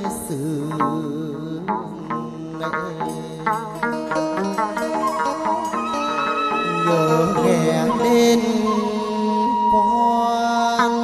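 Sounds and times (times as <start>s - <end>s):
man singing long bending notes: 0.0s - 11.0s
plucked lute accompaniment: 0.0s - 11.0s.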